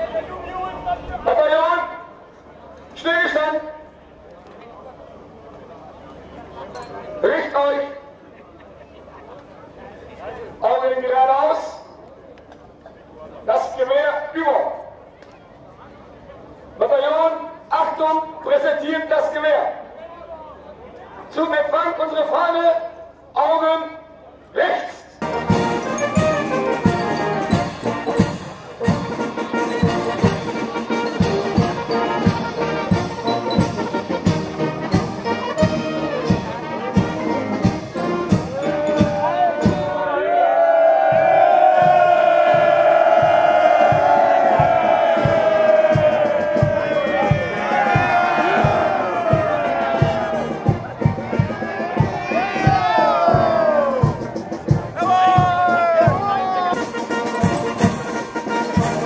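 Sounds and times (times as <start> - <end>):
brass band playing a march: 25.2 - 39.9, 41.7 - 59.0
steady drum beat: 25.2 - 40.0, 41.0 - 59.0.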